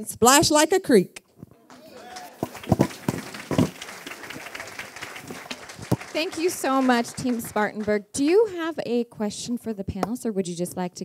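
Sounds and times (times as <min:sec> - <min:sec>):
audience applauding: 0:01.6 - 0:08.6.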